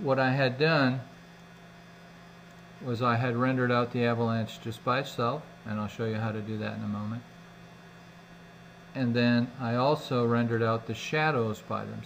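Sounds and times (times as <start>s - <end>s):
man speaking: 0.0s - 1.1s, 2.8s - 7.2s, 9.0s - 12.0s
low electrical hum: 0.0s - 12.0s.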